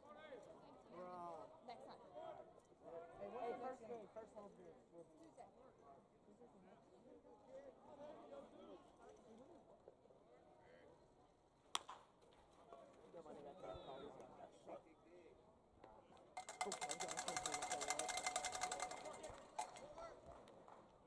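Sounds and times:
faint crowd chatter: 0.0s - 21.0s.

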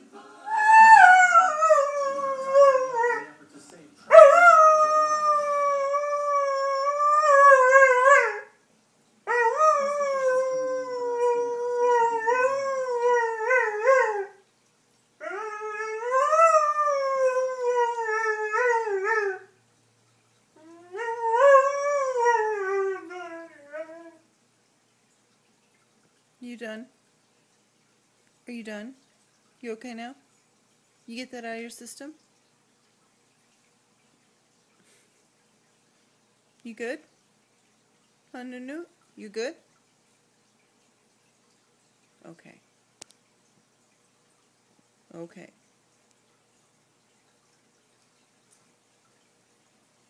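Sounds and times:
dog howling: 0.5s - 3.3s, 4.1s - 8.5s, 9.3s - 14.4s, 20.6s - 24.2s.

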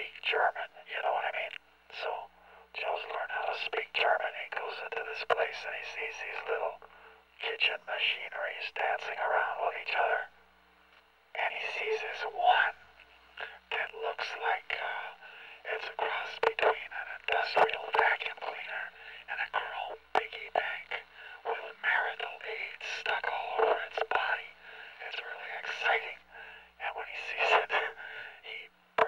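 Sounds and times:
man whispering tinny narration: 0.0s - 10.3s, 11.4s - 12.8s, 13.4s - 28.7s.

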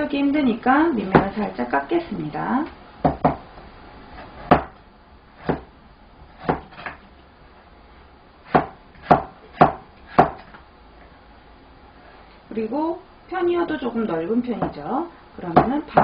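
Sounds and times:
knife chopping on cutting board: 3.0s - 3.4s, 4.2s - 4.8s, 5.4s - 5.7s, 6.4s - 7.0s, 8.5s - 10.5s.

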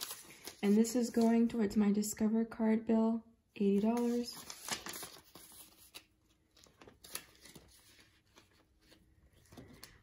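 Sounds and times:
paper banknotes rustling: 0.0s - 1.5s, 3.7s - 10.0s.

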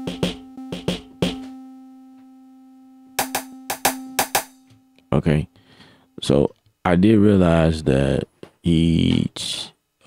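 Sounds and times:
sharp drum hits: 0.0s - 1.5s, 3.2s - 4.6s
steady low tone: 0.0s - 7.7s.

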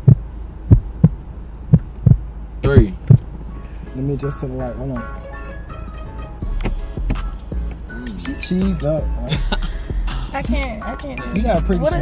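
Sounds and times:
heartbeat double thump: 0.0s - 3.3s, 6.4s - 7.9s
steady low hum: 0.0s - 5.1s.

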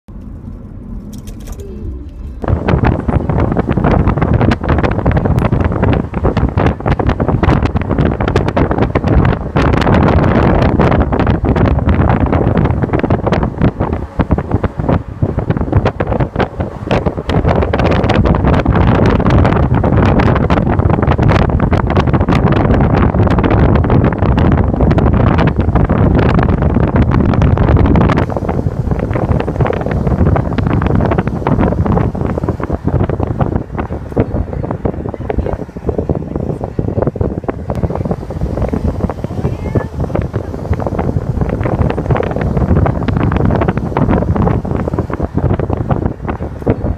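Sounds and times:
road noise: 0.0s - 46.9s
wind buffeting microphone: 0.1s - 46.9s.

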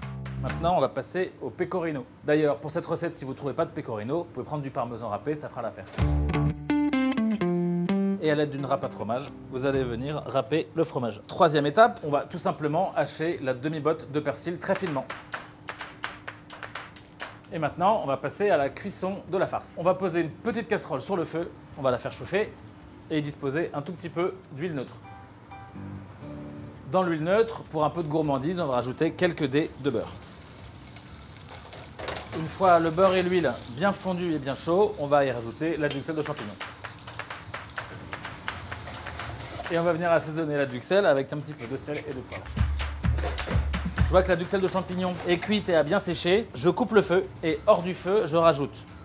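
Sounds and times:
mushrooms sizzling in butter: 29.6s - 40.3s
knife chopping on cutting board: 41.4s - 44.5s.

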